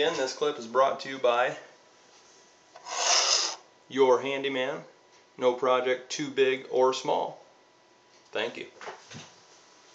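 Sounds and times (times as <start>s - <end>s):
card rubbing on desktop: 2.8s - 3.6s.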